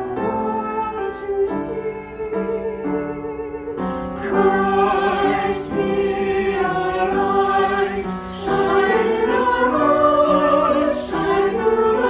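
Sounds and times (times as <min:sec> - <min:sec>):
choir singing slow sacred song: 0:03.9 - 0:12.0.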